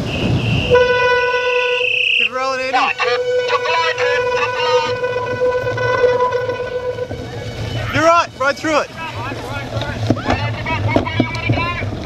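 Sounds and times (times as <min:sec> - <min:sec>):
held horn-like tone: 0:00.0 - 0:09.8
tyres rumbling in mud: 0:00.0 - 0:12.0.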